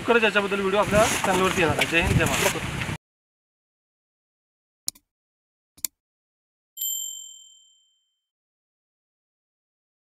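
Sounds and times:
bell-like notification ding: 6.8 - 8.3.

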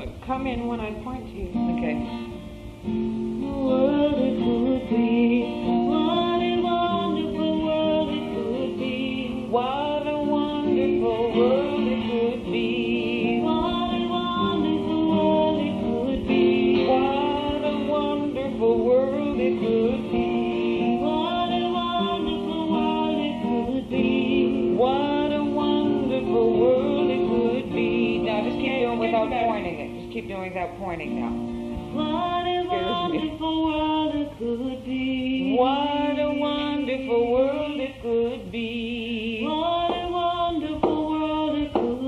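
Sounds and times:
acoustic guitar strumming: 0.0 - 42.0
person singing wordless melody: 3.2 - 42.0.

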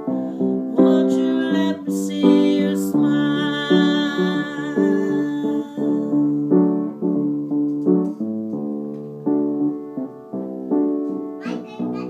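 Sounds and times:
keyboard accompaniment: 0.0 - 12.0.

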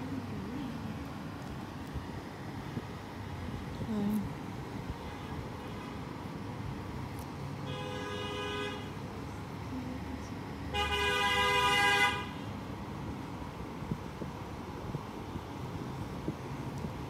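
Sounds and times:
street traffic noise: 0.0 - 17.0
vehicle horn: 7.7 - 9.0, 10.7 - 12.4.

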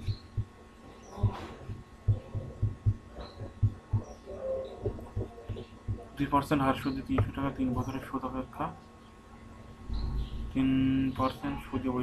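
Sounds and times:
low dull thumps: 1.2 - 4.1, 4.8 - 6.2.

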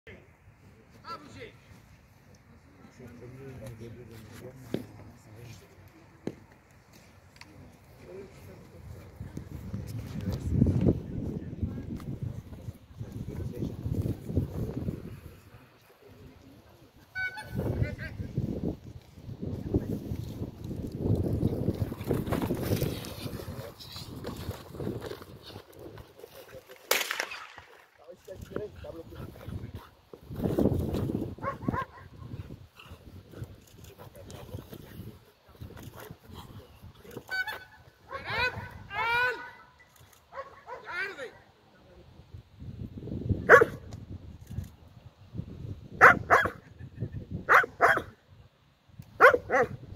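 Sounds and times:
wind buffeting microphone: 8.0 - 26.6, 28.3 - 39.2, 42.2 - 48.1, 49.0 - 49.9
dog barking: 31.4 - 32.1, 40.3 - 41.0, 43.5 - 43.8, 46.0 - 46.6, 47.5 - 48.2, 49.2 - 49.8.

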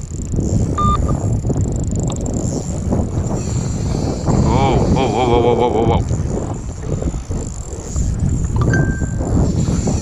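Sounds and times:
fishing reel cranking: 0.0 - 10.0
wind on microphone: 0.0 - 10.0.

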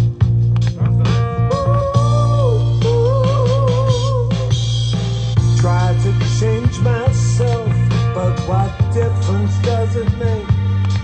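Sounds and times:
guitar: 0.0 - 11.0
song over studio speakers: 0.0 - 11.0
steady bass line: 0.0 - 11.0.

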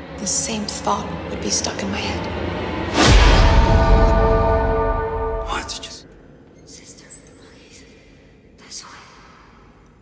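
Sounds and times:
low hum: 0.0 - 8.6
breathy whispering hisses: 6.7 - 9.8.

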